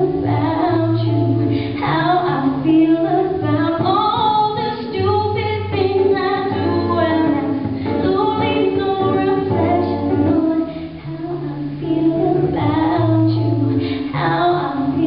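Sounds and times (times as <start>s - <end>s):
acoustic guitar: 0.0s - 15.0s
woman singing into microphone: 0.0s - 15.0s.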